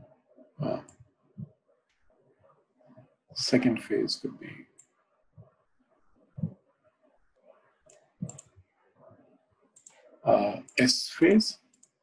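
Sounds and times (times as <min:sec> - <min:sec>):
computer mouse clicks: 0:04.8 - 0:05.6, 0:07.8 - 0:08.6, 0:09.7 - 0:10.8, 0:11.6 - 0:12.0.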